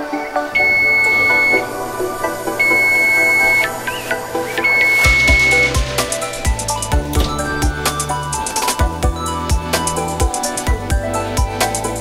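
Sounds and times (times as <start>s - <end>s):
background music: 0.0s - 12.0s
oven timer beeping: 0.6s - 1.8s, 2.6s - 4.0s.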